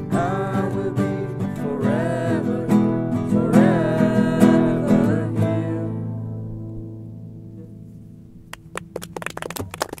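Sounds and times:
acoustic guitar chord ringing: 0.0 - 8.5.

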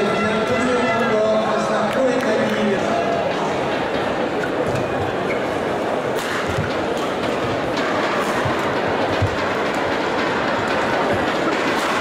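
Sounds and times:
crowd murmur: 0.0 - 12.0
racket striking shuttlecock: 6.1 - 7.5.

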